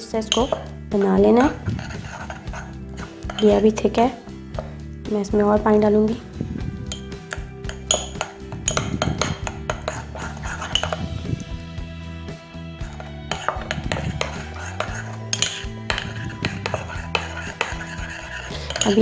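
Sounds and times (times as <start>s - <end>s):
background music: 0.0s - 19.0s
spoon clinking in ceramic bowl: 0.3s - 0.8s, 3.2s - 3.6s, 6.9s - 11.1s, 12.9s - 19.0s.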